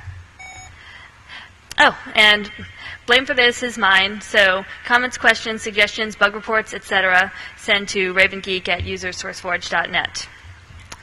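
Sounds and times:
low steady hum: 0:00.0 - 0:11.0
short electronic beep: 0:00.4 - 0:00.8.

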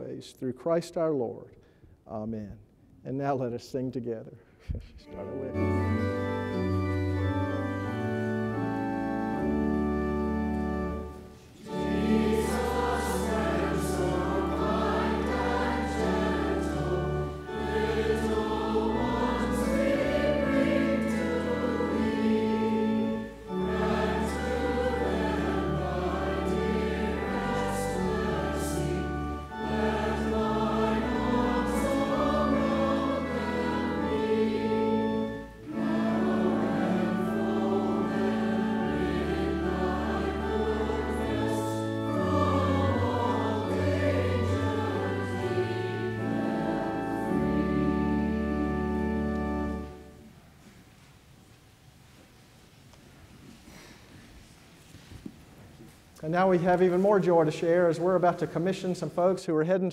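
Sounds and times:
organ: 0:05.0 - 0:50.4
congregation singing a hymn: 0:05.1 - 0:50.4, 0:56.2 - 0:59.9.

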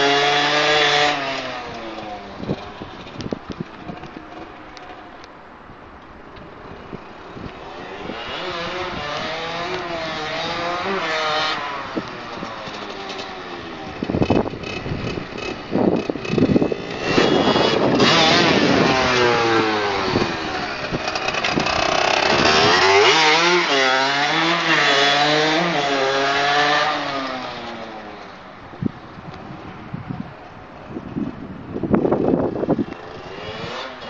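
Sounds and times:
dirt bike engine revving: 0:00.0 - 0:01.8, 0:07.7 - 0:27.8, 0:33.1 - 0:34.0.

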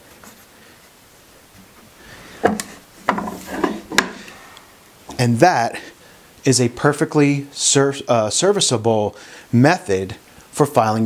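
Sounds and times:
wooden rubbing: 0:01.6 - 0:04.4
bench vise knock: 0:02.4 - 0:04.2.

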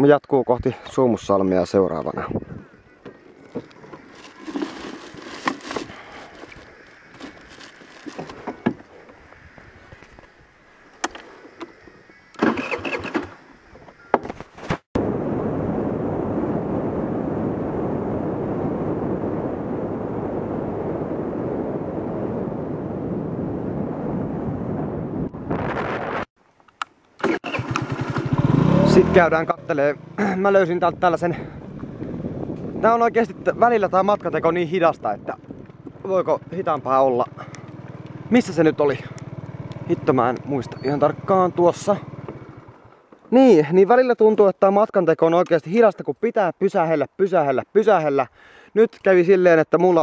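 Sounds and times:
moped engine and road noise: 0:01.8 - 0:14.4, 0:26.8 - 0:43.6
parked moped engine bursts: 0:12.4 - 0:13.4, 0:27.2 - 0:30.5, 0:36.5 - 0:43.0.

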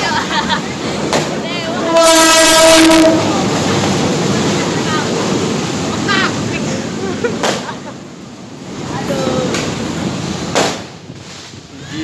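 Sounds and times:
loud sharp bang: 0:10.5 - 0:11.0.

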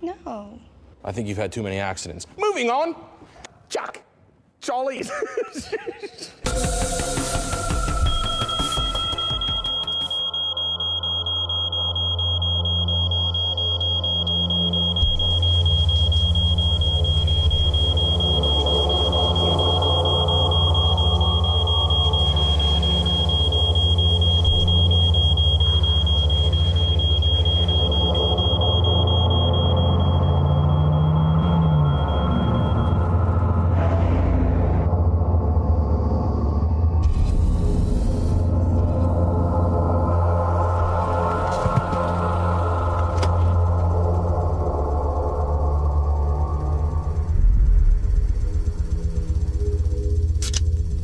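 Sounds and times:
sustained droning tones: 0:06.5 - 0:51.0
thin high-pitched whine: 0:06.5 - 0:51.0
deep low rumble: 0:15.0 - 0:51.0.

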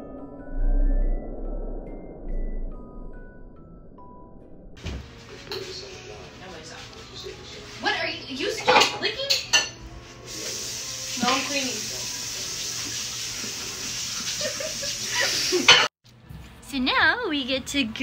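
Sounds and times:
dishes and cutlery clattering: 0:05.4 - 0:05.9, 0:08.5 - 0:09.8, 0:15.7 - 0:15.9.

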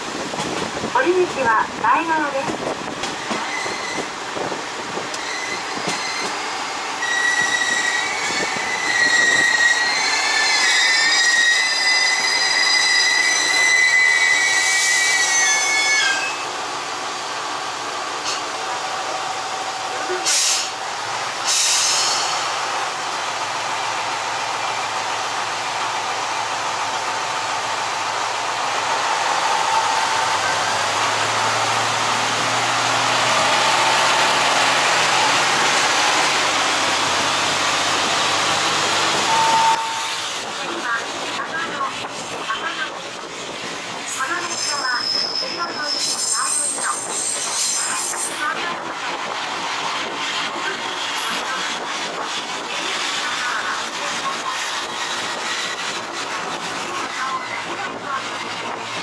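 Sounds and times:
rail and wind noise: 0:00.0 - 0:59.0
train wheels squealing: 0:03.4 - 0:04.1, 0:05.2 - 0:16.5, 0:39.2 - 0:40.2, 0:44.3 - 0:48.4.

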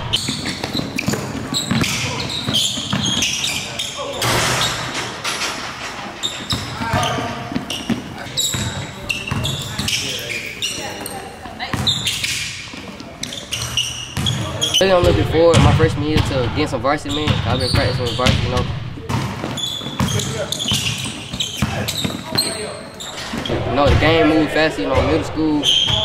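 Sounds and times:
sneaker squeaks: 0:00.0 - 0:24.2, 0:24.8 - 0:26.0
players' voices: 0:00.0 - 0:26.0
basketballs bouncing on hardwood: 0:00.1 - 0:03.7, 0:06.4 - 0:10.1, 0:11.6 - 0:12.2, 0:13.6 - 0:22.7.

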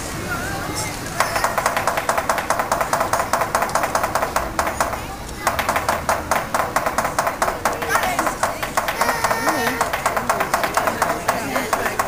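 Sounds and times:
lion dance percussion beat: 0:01.2 - 0:12.0.

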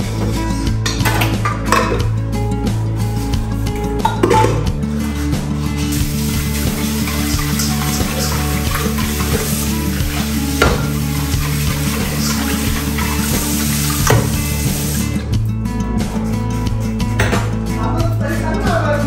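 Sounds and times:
background music: 0:00.0 - 0:19.0
pot knocking against metal sink: 0:00.8 - 0:02.2, 0:04.0 - 0:04.7, 0:10.6 - 0:11.0, 0:14.0 - 0:14.5, 0:17.2 - 0:17.6
tap water running into pot: 0:05.8 - 0:15.2.

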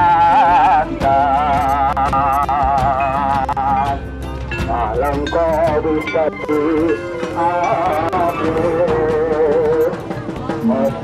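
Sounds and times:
bass drum: 0:00.0 - 0:11.0
hand drums: 0:00.0 - 0:11.0
wavering melody: 0:00.0 - 0:11.0.

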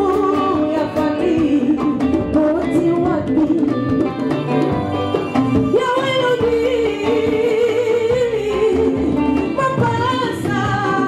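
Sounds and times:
bass guitar: 0:00.0 - 0:11.0
congas: 0:00.0 - 0:11.0
electric guitar: 0:00.0 - 0:11.0.

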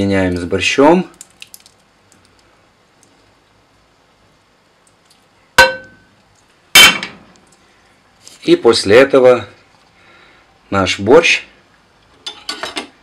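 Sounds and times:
metal pan clanging on pot rim: 0:05.6 - 0:06.0.

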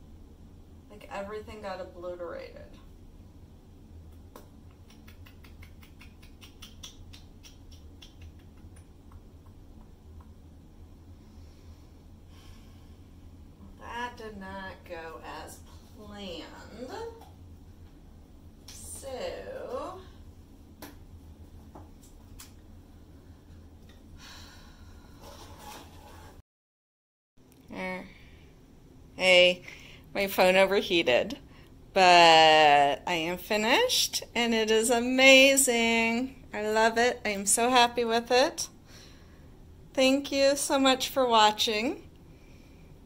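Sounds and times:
low steady hum: 0:00.0 - 0:26.4, 0:27.4 - 0:43.0.

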